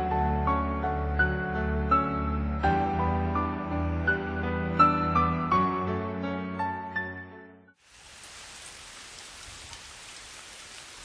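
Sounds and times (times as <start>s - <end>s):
falling water hissing: 7.8s - 11.0s.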